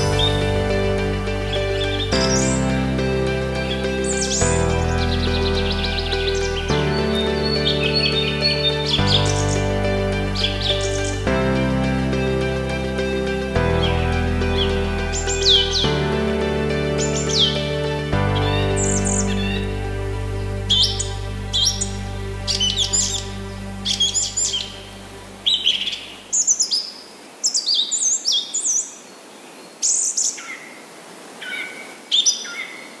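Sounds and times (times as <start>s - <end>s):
music of held chords: 0.0s - 26.3s
songbirds chirping: 0.0s - 33.0s.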